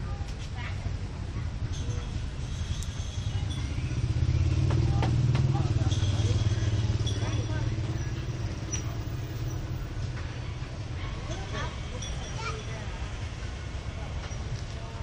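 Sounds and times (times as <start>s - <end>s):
vehicle engine rumble passing: 1.8s - 15.0s.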